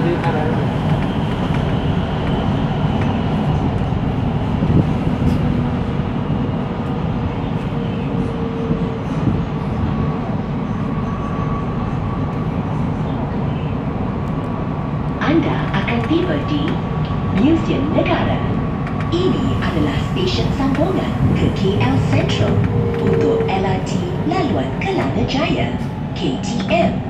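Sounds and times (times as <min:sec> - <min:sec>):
train rumbling through a tunnel: 0:00.0 - 0:27.0.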